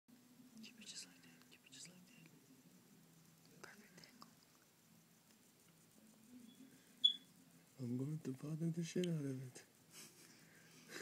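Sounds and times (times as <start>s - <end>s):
person whispering: 0.6s - 2.4s, 3.5s - 4.4s.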